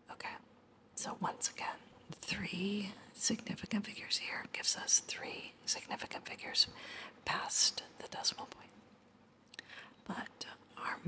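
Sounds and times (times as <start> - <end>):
person whispering: 1.0 - 6.7, 7.3 - 8.7, 10.1 - 11.0.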